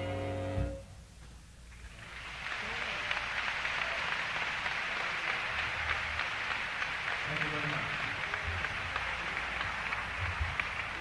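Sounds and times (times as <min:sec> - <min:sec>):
audience applauding: 0:01.7 - 0:11.0.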